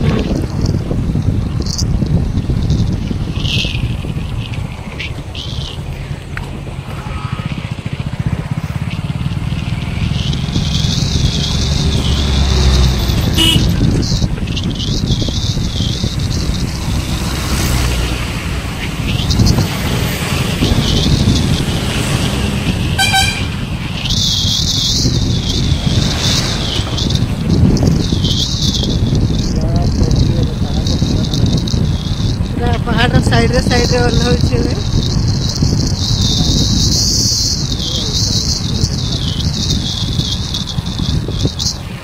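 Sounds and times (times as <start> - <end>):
vehicle running along road: 0.0 - 42.0
wind rumbling on microphone: 0.0 - 42.0
horn tooting: 6.8 - 8.3, 13.2 - 13.9, 21.9 - 23.8.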